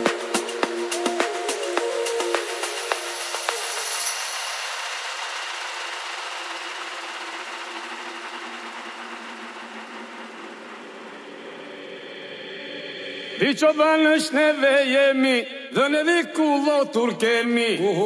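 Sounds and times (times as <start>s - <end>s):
electronic hissing noise wash: 0.0s - 14.6s.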